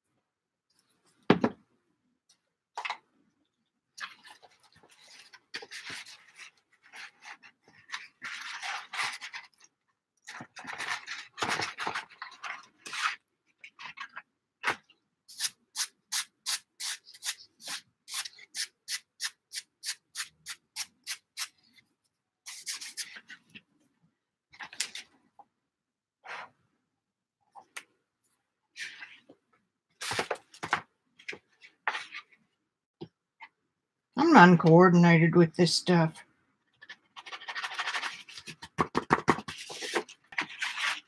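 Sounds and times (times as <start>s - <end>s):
paper rustling: 4.0s - 9.7s, 10.3s - 14.8s, 30.0s - 32.4s, 36.7s - 41.0s.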